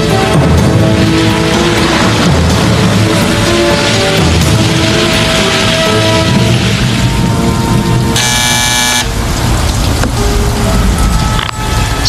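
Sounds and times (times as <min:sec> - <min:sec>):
background music: 0:00.0 - 0:12.0
loud blaring tone: 0:04.7 - 0:09.5.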